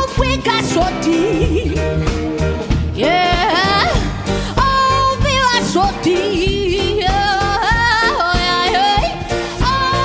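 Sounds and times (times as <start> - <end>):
drums: 0.0 - 10.0
electric bass: 0.0 - 10.0
jazz band playing: 0.0 - 10.0
woman singing wordless melody: 3.0 - 10.0.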